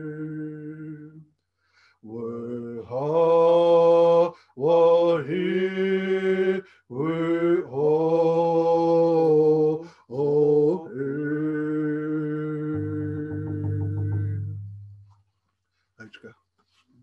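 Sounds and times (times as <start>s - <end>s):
man singing unaccompanied chant: 0.0s - 1.2s, 2.0s - 14.7s.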